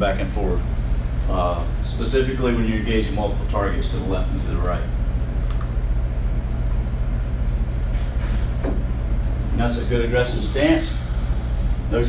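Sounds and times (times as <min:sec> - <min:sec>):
indoor room hum: 0:00.0 - 0:12.0.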